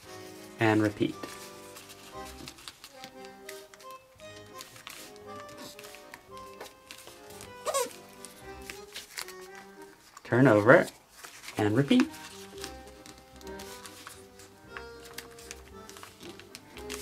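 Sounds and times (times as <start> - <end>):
soft background music: 0.0 - 17.0
paper being creased: 1.2 - 17.0.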